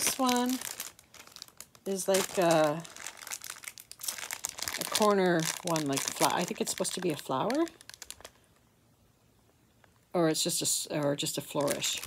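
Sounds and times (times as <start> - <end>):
plastic packaging crinkling: 0.0 - 8.7, 10.8 - 12.0.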